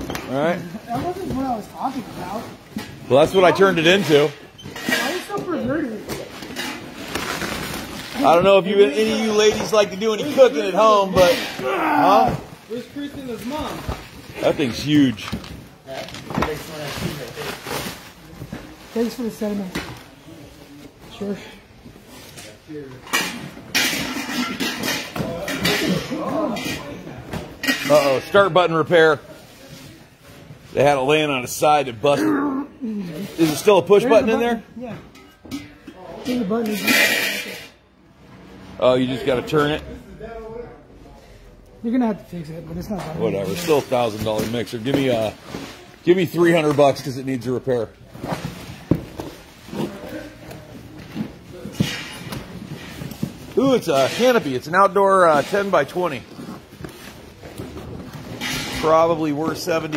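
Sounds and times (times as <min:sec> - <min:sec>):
plastic wrap and cardboard rustling: 0:00.3 - 0:23.0, 0:43.2 - 0:59.9
faint background chatter: 0:14.3 - 0:59.8.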